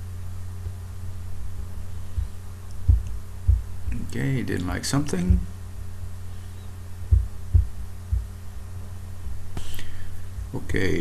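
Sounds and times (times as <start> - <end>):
low electrical hum: 0.0 - 11.0
dull low thumps: 1.4 - 4.1, 5.2 - 5.7, 7.0 - 8.4.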